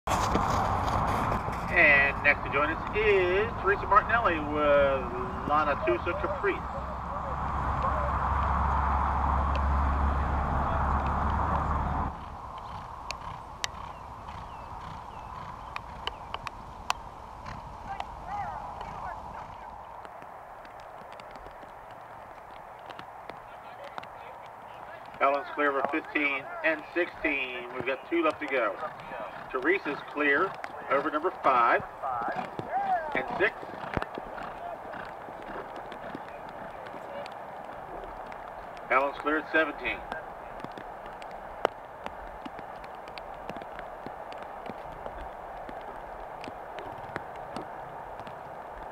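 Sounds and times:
horse hoofbeats on turf: 0.1s - 6.9s, 10.9s - 48.9s
wind rumbling on microphone: 0.1s - 48.9s.

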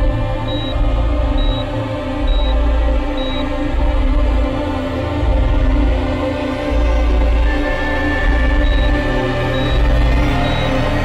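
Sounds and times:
tense background score: 0.0s - 11.0s
heart monitor beeps: 0.4s - 3.5s, 8.1s - 11.0s.

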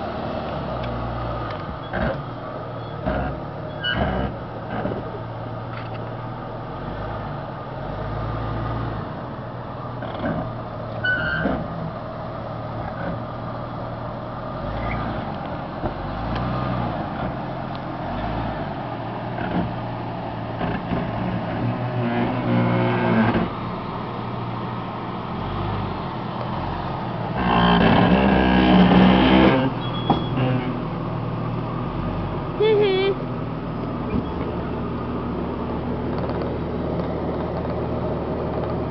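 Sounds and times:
engine running at low speed: 0.0s - 38.9s
engine throttle bursts: 27.3s - 30.8s.

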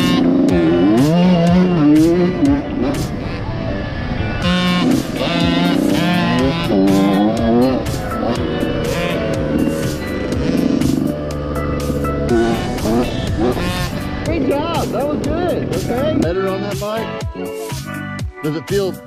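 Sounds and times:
dirt bike engines running: 0.0s - 18.0s
song with singing and drum beat: 15.2s - 18.4s.

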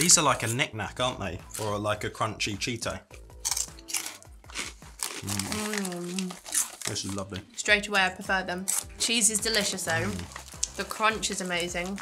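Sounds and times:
people chewing crunchy snacks: 3.4s - 7.5s, 8.6s - 12.0s.

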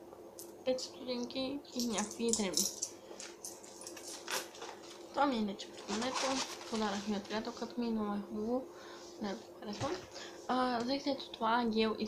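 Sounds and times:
soft rustling and handling: 1.8s - 7.8s.

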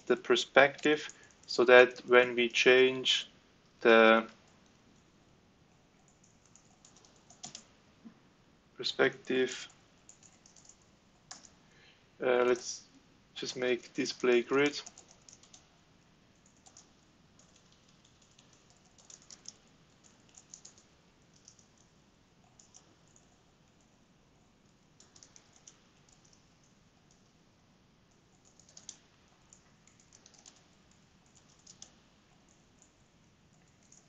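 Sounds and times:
computer keyboard typing: 0.0s - 2.6s, 6.0s - 7.7s, 9.2s - 11.6s, 13.4s - 24.0s, 24.7s - 27.3s, 28.1s - 34.0s.

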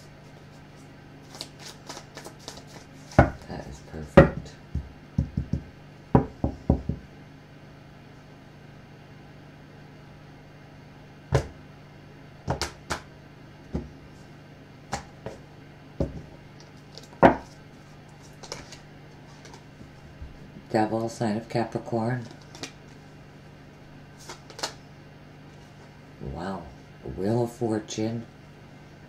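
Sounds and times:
cards tapping and knocking: 1.3s - 3.5s, 4.2s - 7.0s, 12.5s - 13.1s, 16.0s - 16.3s, 16.9s - 17.6s, 18.4s - 18.8s, 22.2s - 22.8s, 24.2s - 24.8s.

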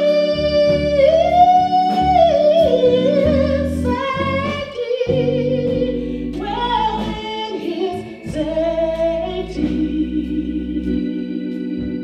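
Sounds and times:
organ chords: 0.0s - 12.0s
woman singing gospel: 0.0s - 12.0s.

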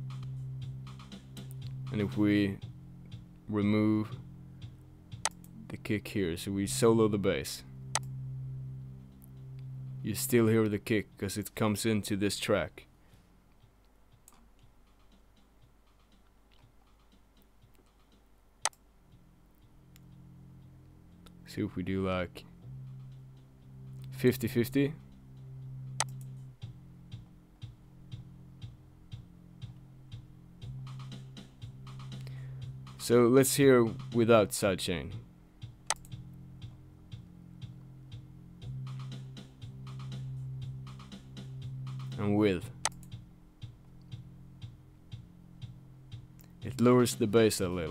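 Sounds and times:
faint low hum: 0.0s - 47.9s
computer mouse clicking: 15.9s - 18.8s, 26.0s - 26.3s, 35.8s - 36.2s, 42.8s - 43.2s.

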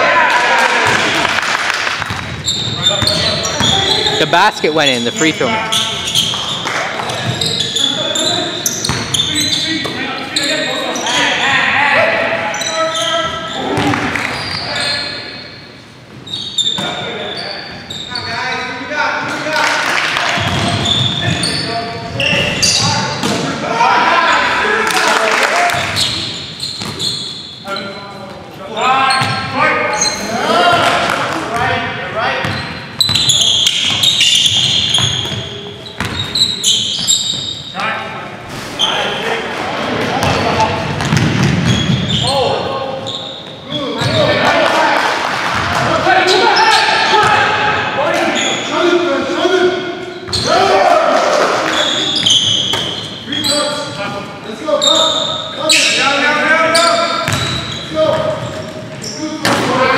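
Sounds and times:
players calling out: 2.3s - 37.8s
basketball bouncing on wooden floor: 41.0s - 42.1s, 57.2s - 57.6s.

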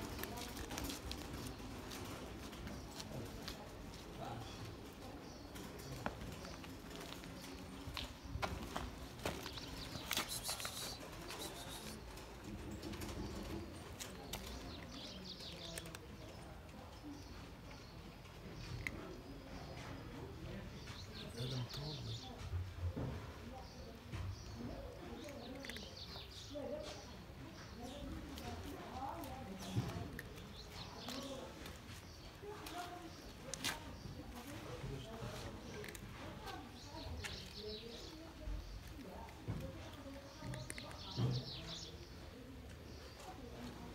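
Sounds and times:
cat crunching dry kibble: 0.0s - 3.8s, 13.9s - 16.7s, 25.2s - 26.4s, 35.2s - 41.2s
faint indistinct voices: 0.0s - 43.9s.

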